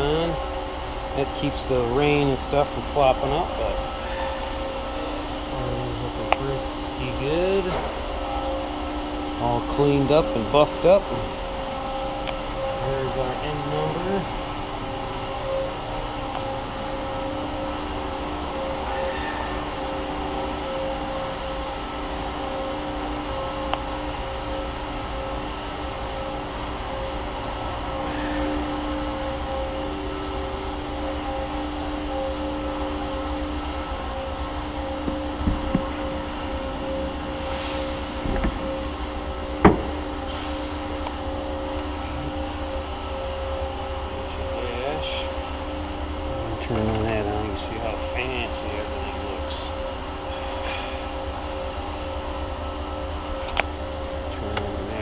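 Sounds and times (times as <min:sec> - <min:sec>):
steady mechanical hum: 0:00.0 - 0:55.0.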